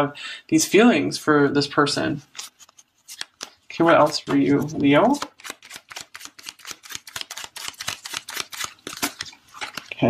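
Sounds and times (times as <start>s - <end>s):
cards being shuffled: 2.3s - 10.0s.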